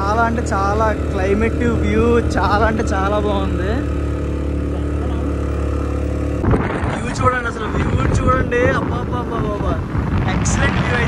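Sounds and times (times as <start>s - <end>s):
motorcycle engine humming: 0.0s - 11.0s
wind buffeting microphone: 6.2s - 11.0s.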